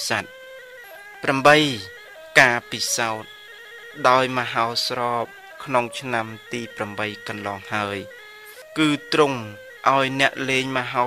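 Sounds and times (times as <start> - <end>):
man preaching: 0.0 - 0.3, 1.0 - 3.3, 4.0 - 11.0
faint steady tones: 0.0 - 11.0.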